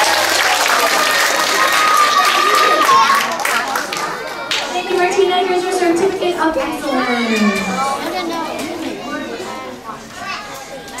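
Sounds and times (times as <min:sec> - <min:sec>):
children's voices: 0:01.0 - 0:11.0
people talking: 0:04.6 - 0:10.9.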